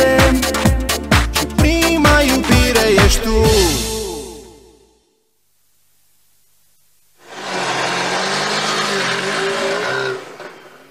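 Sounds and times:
loud rush of noise: 2.8 - 4.2
car engine revving: 7.2 - 10.9.

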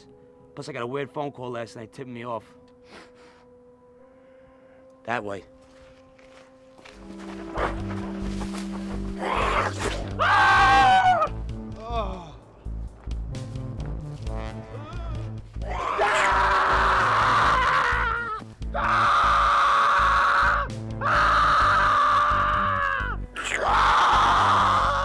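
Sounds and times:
music with low bass pulse: 6.8 - 10.3, 11.1 - 15.8
long loud screams: 10.2 - 11.3, 15.7 - 25.0.

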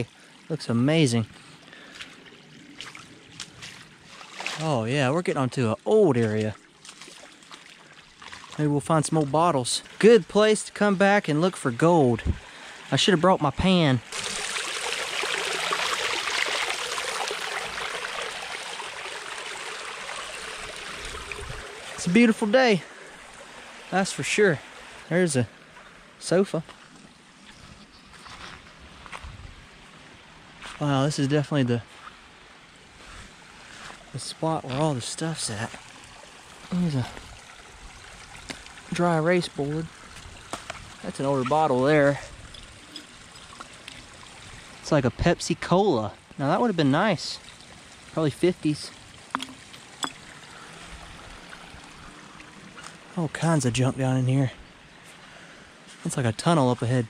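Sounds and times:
creek water trickling: 0.0 - 57.0
footsteps on sandy mud: 2.8 - 4.6, 26.6 - 30.0, 30.6 - 30.8, 33.0 - 34.9.

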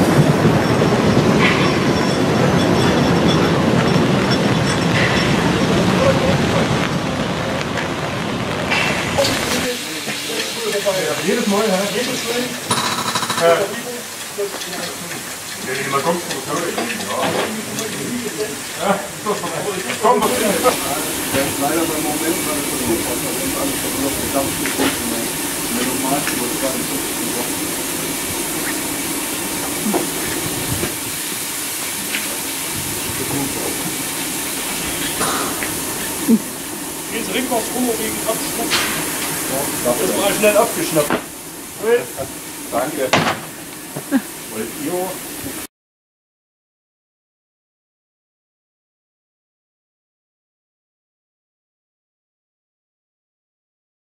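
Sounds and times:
steam hissing from locomotive: 0.0 - 45.7
people talking: 5.5 - 6.9, 9.2 - 12.7, 13.3 - 27.7, 33.1 - 34.0, 37.1 - 41.2, 41.8 - 43.3, 44.0 - 45.3.

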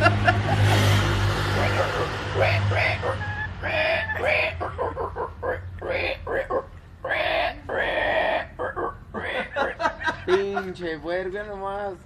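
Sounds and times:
men talking: 10.2 - 12.0.

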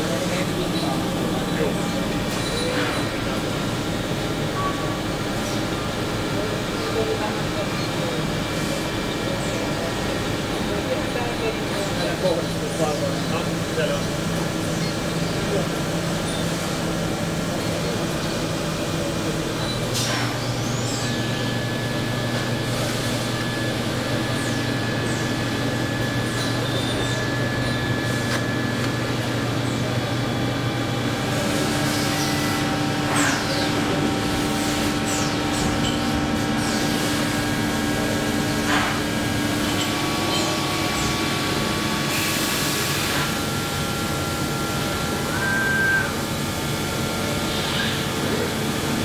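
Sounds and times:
factory machinery hum: 0.0 - 49.0.

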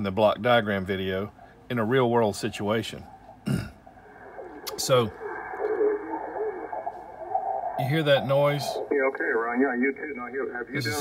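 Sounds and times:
radio band hiss: 0.0 - 11.0
garbled radio interference: 1.4 - 11.0
thin radio speech: 4.2 - 11.0.

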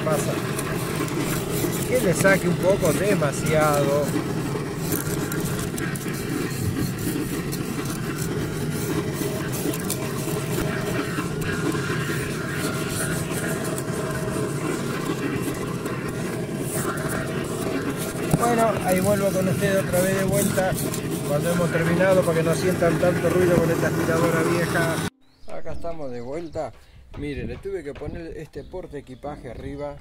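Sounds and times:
vacuum cleaner running: 0.0 - 25.1.

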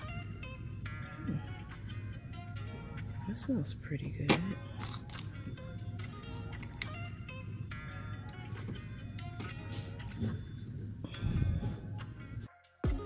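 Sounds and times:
steady low hum: 0.0 - 12.5.

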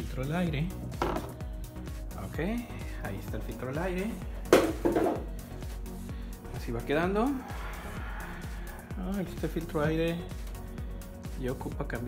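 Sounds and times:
plastic part knocking: 1.0 - 1.4, 4.5 - 5.3.

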